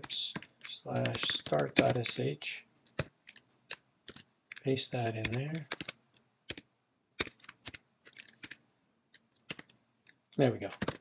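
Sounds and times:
typing on computer keyboard: 0:00.0 - 0:02.3, 0:02.9 - 0:08.6, 0:09.4 - 0:09.8, 0:10.6 - 0:11.0.

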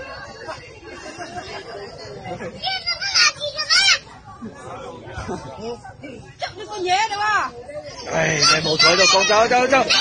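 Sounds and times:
adult voices chattering: 0:00.0 - 0:10.0
child shouting: 0:02.6 - 0:04.1, 0:08.1 - 0:10.0.

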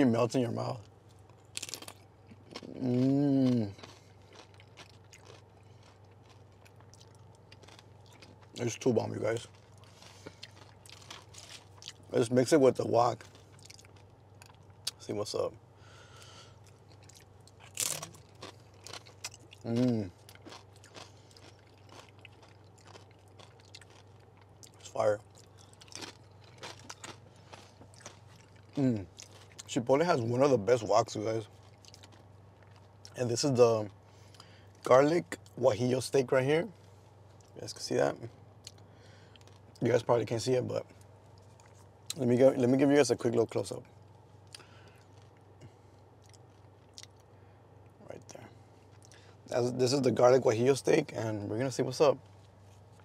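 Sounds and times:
faint low hum: 0:00.0 - 0:53.0
chewing crunchy chips: 0:00.6 - 0:15.1, 0:15.9 - 0:35.6, 0:38.3 - 0:39.9, 0:40.8 - 0:42.7, 0:43.9 - 0:50.1.

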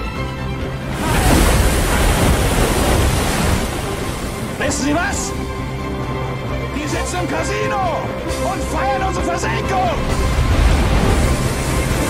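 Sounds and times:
wind: 0:00.0 - 0:06.8
seawater rushing and spraying: 0:00.7 - 0:07.4, 0:09.4 - 0:12.0.

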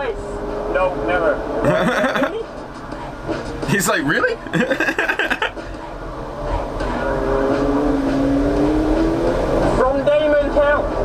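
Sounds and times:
sports car engine accelerating: 0:00.0 - 0:11.0.

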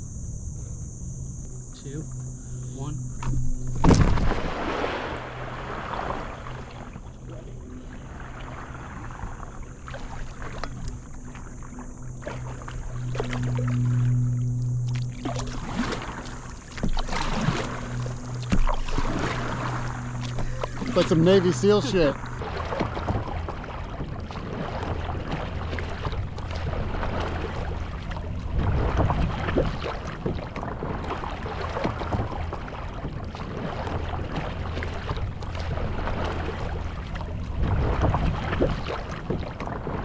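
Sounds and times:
steady low hum: 0:00.0 - 0:40.0
thump and splash on paddleboard: 0:03.2 - 0:06.7, 0:14.9 - 0:40.0
paddle strokes splashing: 0:03.2 - 0:40.0.

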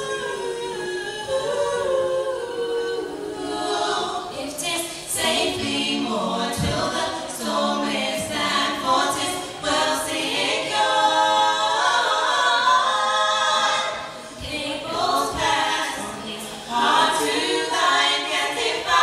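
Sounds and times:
women singing in harmony: 0:00.0 - 0:19.0.

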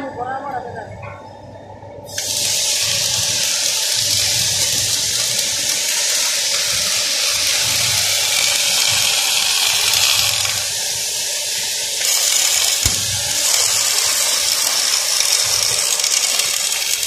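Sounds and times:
welding arc hissing: 0:02.1 - 0:17.0.

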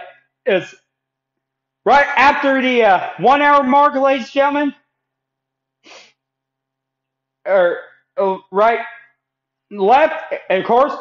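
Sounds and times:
man's short breath intake: 0:05.8 - 0:06.2.

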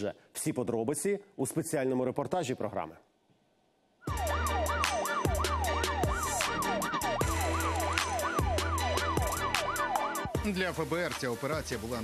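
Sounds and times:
siren wailing up and down: 0:04.1 - 0:10.4
music with deep bass and drums: 0:04.1 - 0:12.0.

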